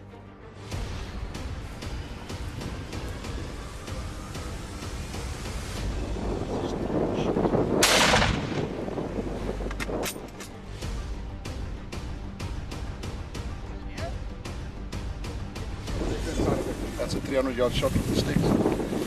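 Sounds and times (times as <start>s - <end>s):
background music: 0.0s - 19.0s
rifle shot: 7.8s - 8.8s.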